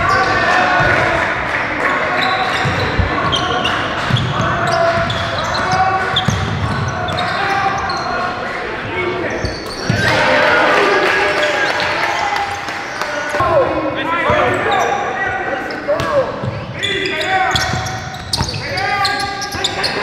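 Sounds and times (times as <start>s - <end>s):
players' voices: 0.0s - 20.0s
sneakers squeaking on court: 2.0s - 10.1s, 14.2s - 20.0s
basketball bouncing: 2.5s - 7.3s.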